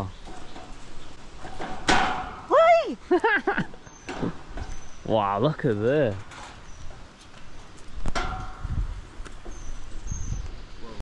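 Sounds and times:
clank of steel grating underfoot: 0:00.1 - 0:02.5, 0:04.0 - 0:05.0, 0:05.9 - 0:09.7.

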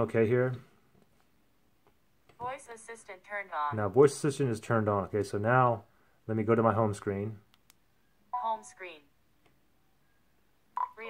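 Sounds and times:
phone click-tone: 0:10.8 - 0:11.0.

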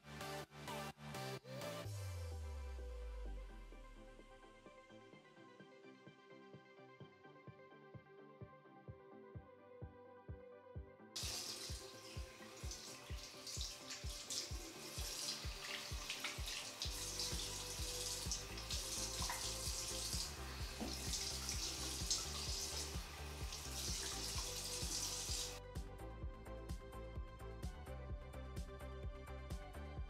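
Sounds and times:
background music with steady beat: 0:00.0 - 0:30.0
water splashing on face: 0:11.2 - 0:25.5
faucet running into sink: 0:11.2 - 0:25.6.

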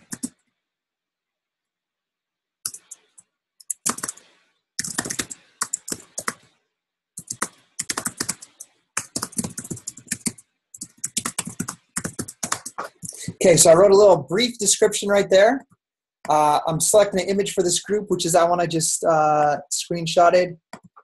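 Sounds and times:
computer keyboard typing: 0:00.0 - 0:00.4, 0:02.6 - 0:06.5, 0:07.2 - 0:13.2.

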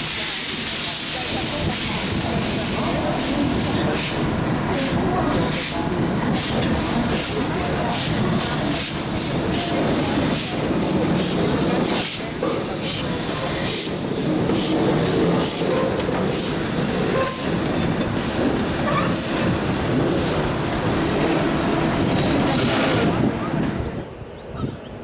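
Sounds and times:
steam locomotive exhaust chuffs: 0:00.0 - 0:23.3
hissing steam: 0:00.0 - 0:24.0.

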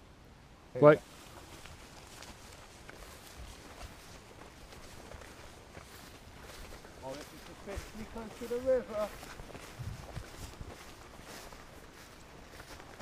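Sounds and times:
footsteps through long grass: 0:01.0 - 0:13.0.

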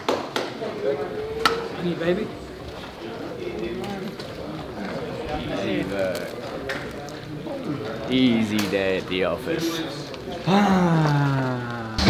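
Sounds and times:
people talking indistinctly: 0:00.5 - 0:12.0.

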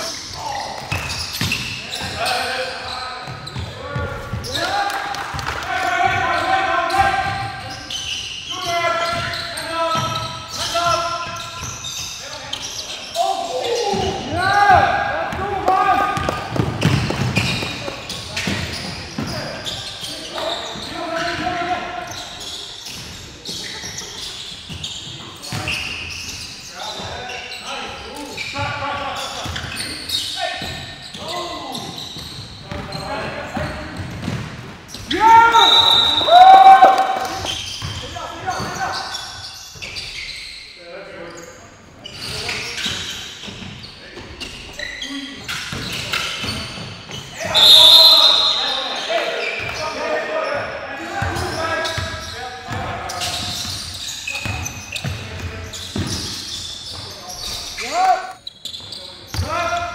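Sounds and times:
players shouting: 0:13.2 - 0:16.9, 0:35.1 - 0:38.8, 0:47.3 - 0:50.3
basketball bouncing on wooden floor: 0:16.2 - 0:19.4, 0:34.0 - 0:34.7.

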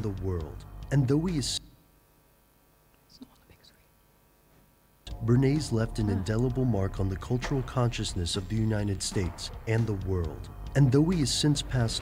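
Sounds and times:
faint whispering: 0:03.0 - 0:04.0.

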